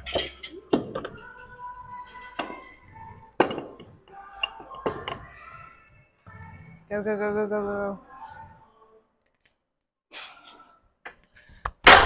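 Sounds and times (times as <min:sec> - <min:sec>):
background music: 0:00.0 - 0:09.5.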